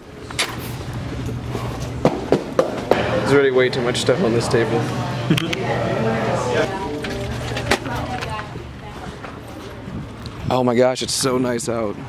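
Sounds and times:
steady low hum: 0.0s - 10.6s
indistinct voices: 2.9s - 10.6s.

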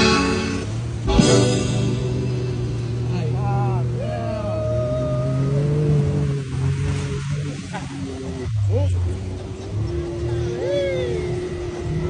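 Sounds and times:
engine droning through water: 0.0s - 12.0s.

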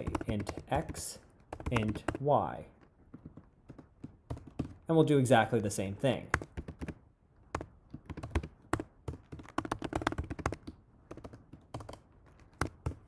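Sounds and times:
typing on computer keyboard: 0.0s - 4.8s, 6.2s - 13.0s.

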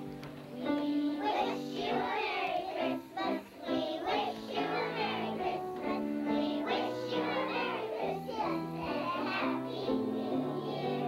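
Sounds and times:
children singing together: 0.0s - 11.0s
musical accompaniment: 0.0s - 11.0s.

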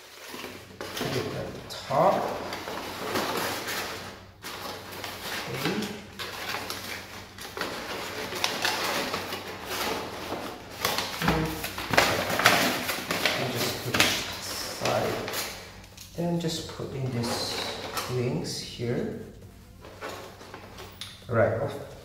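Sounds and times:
crumpled paper rustling: 0.0s - 22.0s.

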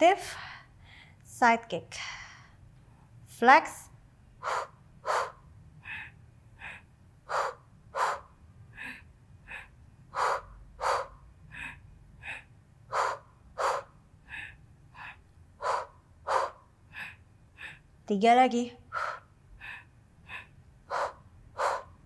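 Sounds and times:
woman breathing hard: 0.2s - 1.2s, 2.0s - 3.2s, 4.3s - 18.0s, 18.9s - 22.0s.

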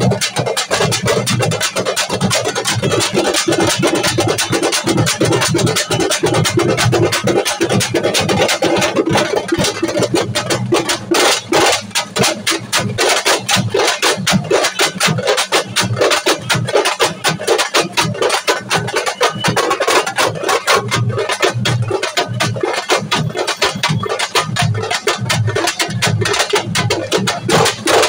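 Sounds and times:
rapid drum beats: 0.0s - 28.0s.

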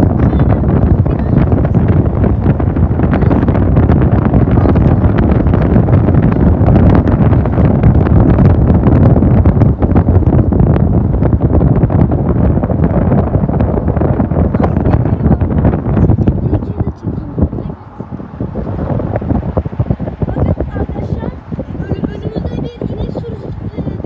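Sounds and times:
road noise: 0.0s - 24.0s
wind buffeting microphone: 0.0s - 24.0s.

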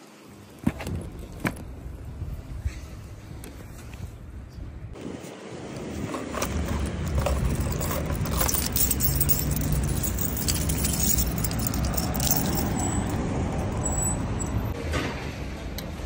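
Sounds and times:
keys jangling: 6.3s - 14.6s.

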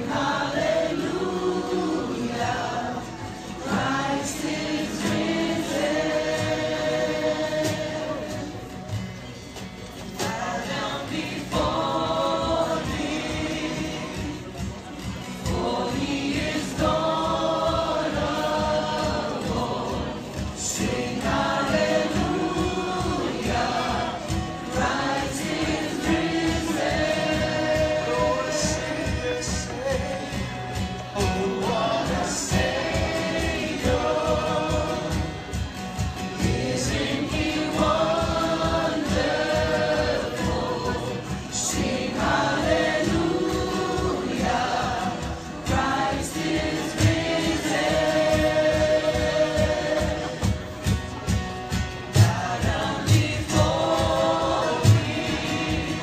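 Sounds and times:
gospel group singing: 0.0s - 56.0s.

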